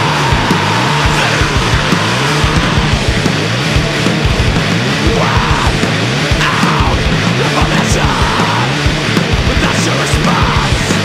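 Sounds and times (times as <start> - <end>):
distorted electric guitars: 0.0 - 11.0.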